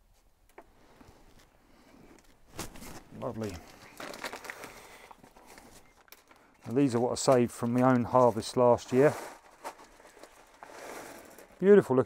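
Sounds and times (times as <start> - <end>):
paper packet crinkling: 2.5 - 11.7.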